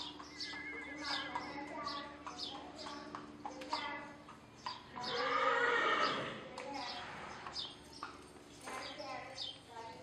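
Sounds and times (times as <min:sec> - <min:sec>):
light hoofbeats: 0:00.0 - 0:10.0
horse whinnying: 0:00.4 - 0:01.2, 0:05.1 - 0:06.4.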